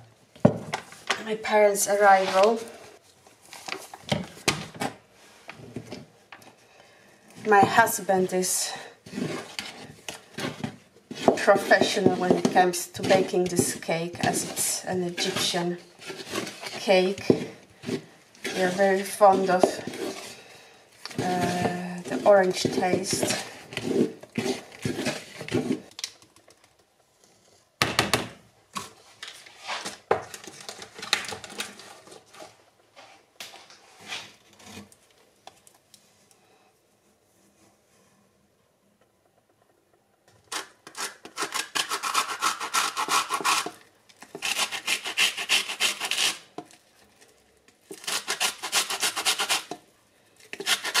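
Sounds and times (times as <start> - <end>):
orange scraping on metal grater: 44.4 - 46.5, 50.6 - 51.0.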